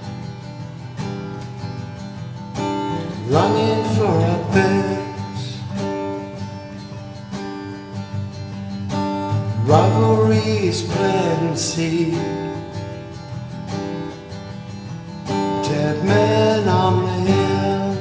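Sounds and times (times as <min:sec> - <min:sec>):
guitar-led instrumental music: 0:00.0 - 0:18.0.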